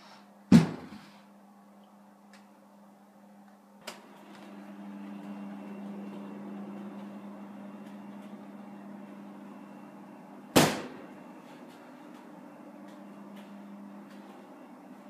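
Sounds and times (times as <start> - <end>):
low hum: 1.4 - 15.0
loud sudden bang: 10.6 - 11.0.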